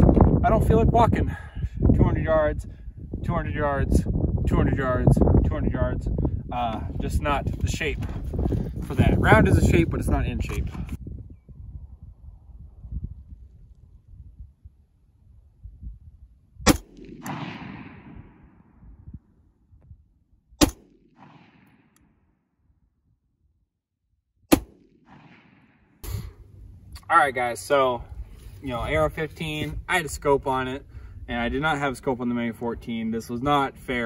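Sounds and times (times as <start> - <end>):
rifle shots echoing: 16.6 - 18.8, 20.6 - 22.2, 24.5 - 26.0
faint gunshot crack: 16.7 - 18.5, 20.6 - 22.0.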